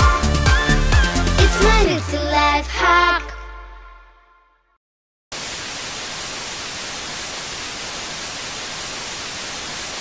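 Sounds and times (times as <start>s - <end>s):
television static hiss: 5.4s - 10.0s.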